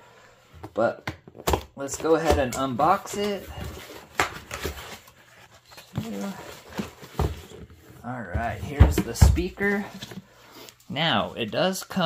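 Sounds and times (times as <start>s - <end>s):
cardboard and packaging rustling: 0.7s - 11.8s.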